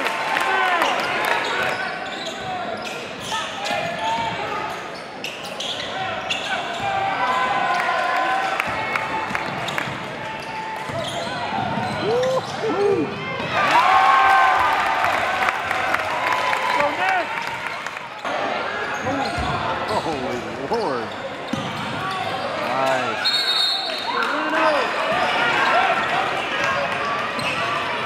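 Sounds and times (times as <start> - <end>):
crowd voices and shouts: 0.0 - 28.0
shoe squeaks: 1.4 - 6.8, 10.4 - 12.5.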